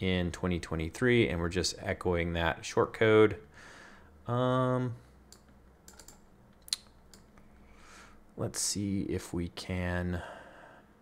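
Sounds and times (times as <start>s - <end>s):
computer keyboard clicks: 5.3s - 7.3s.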